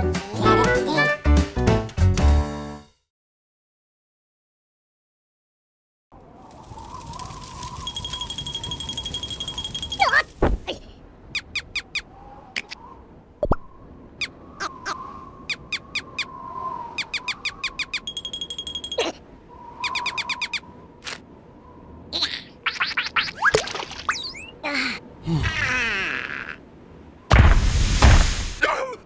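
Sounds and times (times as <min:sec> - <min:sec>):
steady high beep: 0:18.0 - 0:19.0.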